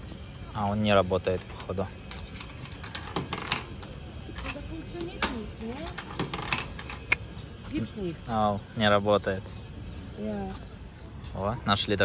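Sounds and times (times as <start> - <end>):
coin rattling in coin mechanism: 1.4 - 7.1.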